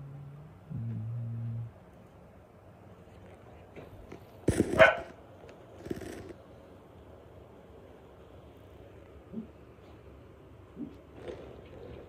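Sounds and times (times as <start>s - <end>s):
dog barking: 4.7s - 5.2s.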